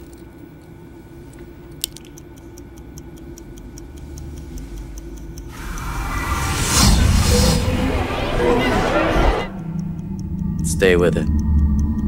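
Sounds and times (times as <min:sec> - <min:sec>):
clock ticking: 0:02.2 - 0:05.6, 0:09.7 - 0:12.0
low hum: 0:05.1 - 0:12.0
swell of noise: 0:05.5 - 0:10.5.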